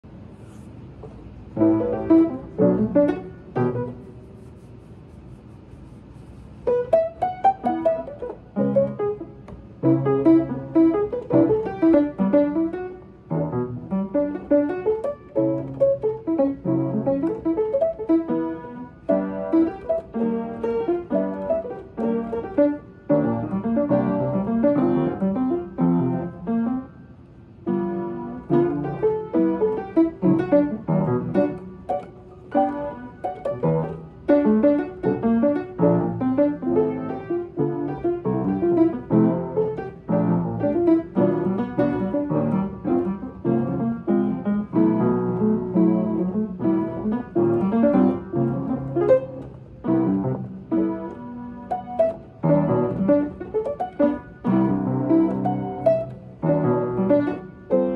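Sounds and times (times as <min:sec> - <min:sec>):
upright piano playing: 0:01.3 - 0:04.7, 0:06.6 - 0:57.9.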